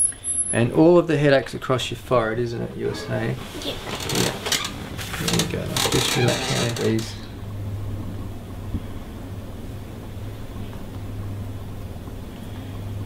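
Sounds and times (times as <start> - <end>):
faint room noise: 0.0 - 10.9
steady low hum: 0.0 - 13.0.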